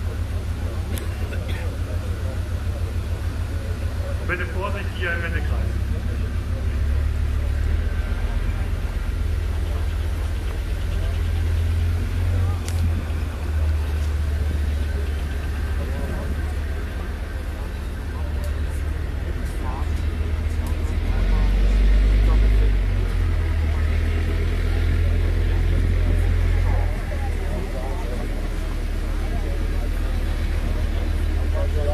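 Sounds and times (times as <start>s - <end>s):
crowd murmur: 0.0s - 31.9s
tank diesel engine rumbling: 0.0s - 31.9s.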